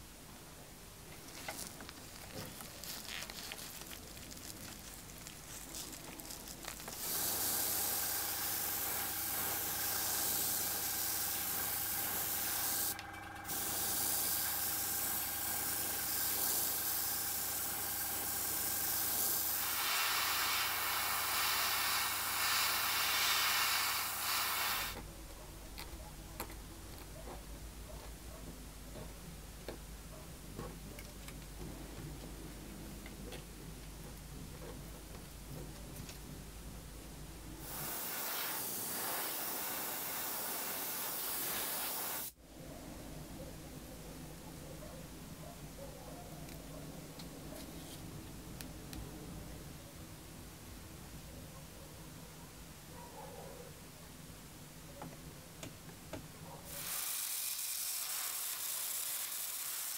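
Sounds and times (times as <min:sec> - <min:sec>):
hissing spray: 0:01.3 - 0:25.0, 0:37.6 - 0:42.4, 0:56.7 - 0:59.9.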